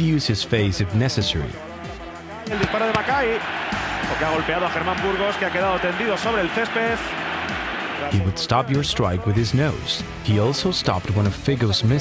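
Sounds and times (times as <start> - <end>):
excited football commentator: 0.0 - 1.6, 2.5 - 12.0
music: 0.0 - 12.0
stadium crowd noise: 2.5 - 9.4.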